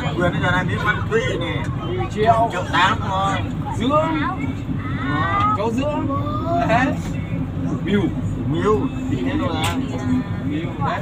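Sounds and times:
people talking: 0.0 - 11.0
vehicle engine drone: 0.0 - 11.0.

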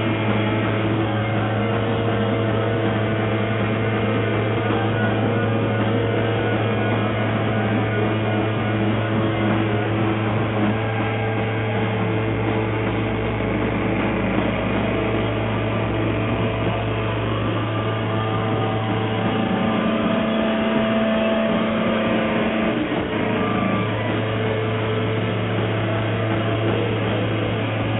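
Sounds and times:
electric guitar feedback drone: 0.0 - 27.9.

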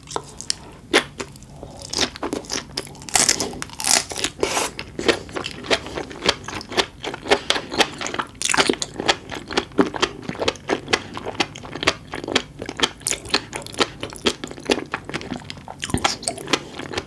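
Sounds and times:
wet chewing clicks and crunches: 0.0 - 17.0.

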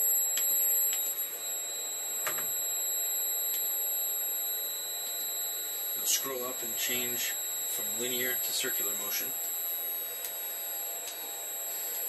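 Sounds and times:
high-pitched electronic whine: 0.0 - 12.0.

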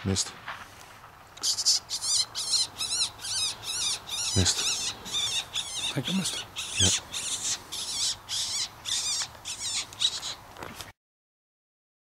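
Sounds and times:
high-pitched warbling squeaks: 1.4 - 10.4.

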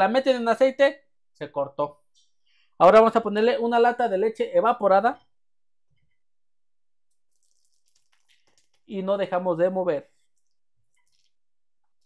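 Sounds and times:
milk pouring into pot: 7.0 - 8.9, 10.0 - 12.0.

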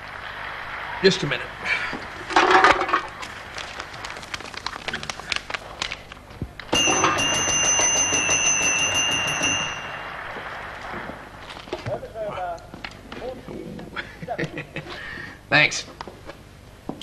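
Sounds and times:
snack packaging crinkling: 3.1 - 6.3.

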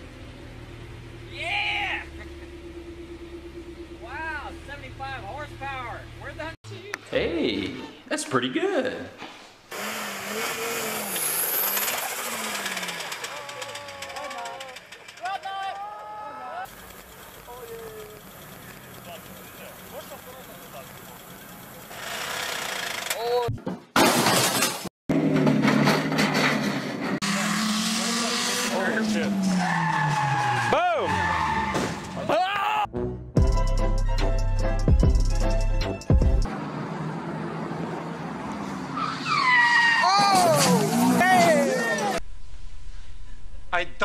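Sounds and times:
car engine revving: 9.7 - 15.2, 25.1 - 32.1
people's voices: 12.0 - 16.7, 17.4 - 21.2, 40.0 - 42.2.

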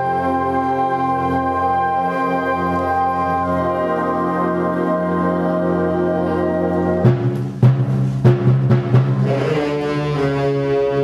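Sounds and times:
concert band holding chords: 0.0 - 11.0.

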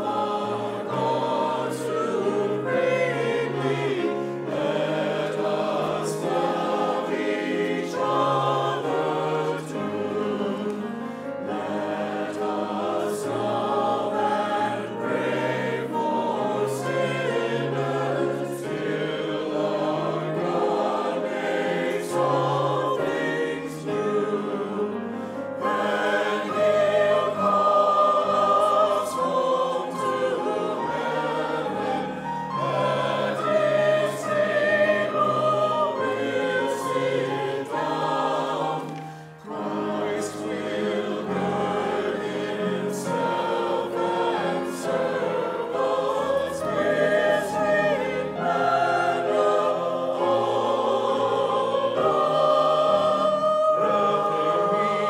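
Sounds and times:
grand piano accompaniment: 0.0 - 55.0
mixed choir singing: 0.0 - 55.0.

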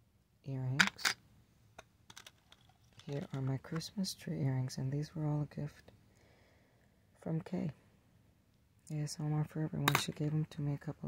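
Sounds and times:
earrings clicking on plastic tray: 2.1 - 3.8.

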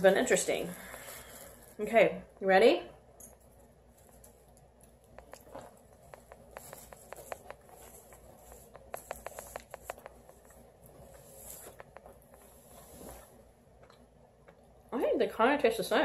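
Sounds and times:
plastic wrap crinkling: 0.0 - 2.1, 3.4 - 13.4.

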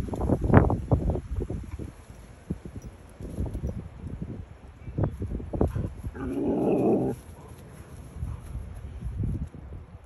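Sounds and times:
dog scuffling in grass: 5.2 - 9.5
low rough dog vocalisation: 6.2 - 7.2.

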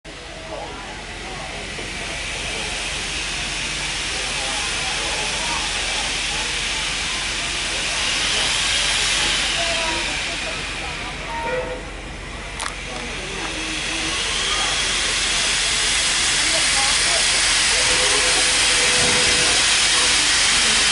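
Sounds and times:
hiss of steam: 0.1 - 20.9
train rolling: 0.1 - 20.9.

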